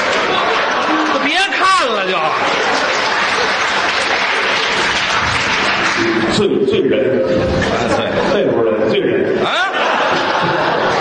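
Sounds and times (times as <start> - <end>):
audience applauding: 0.0 - 6.5.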